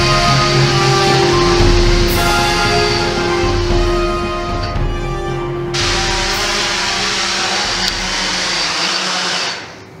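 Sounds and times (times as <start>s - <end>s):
drone propellers whirring: 0.0s - 10.0s.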